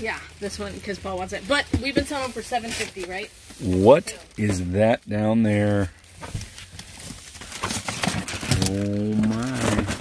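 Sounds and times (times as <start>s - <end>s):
packaging rustling and knocking: 1.5s - 3.7s, 6.1s - 10.0s.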